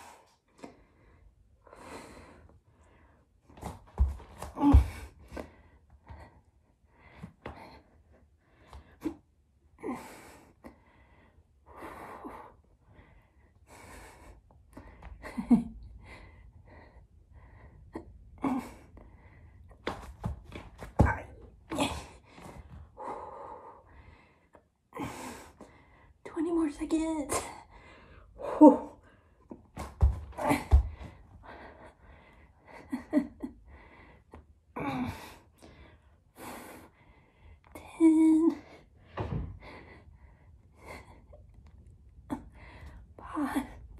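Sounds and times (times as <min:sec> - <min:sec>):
woman breathing hard and gasping: 0:00.0 - 0:09.2, 0:09.8 - 0:26.2, 0:27.4 - 0:37.7, 0:38.6 - 0:41.6.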